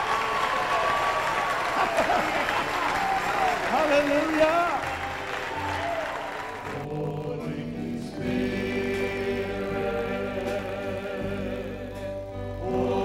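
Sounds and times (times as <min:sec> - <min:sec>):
congregation applauding: 0:00.0 - 0:06.9
sustained chords with voices singing: 0:06.3 - 0:13.0.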